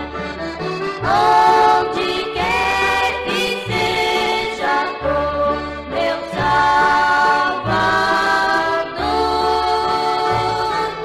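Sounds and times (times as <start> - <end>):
women's group singing a hymn: 1.0 - 11.0.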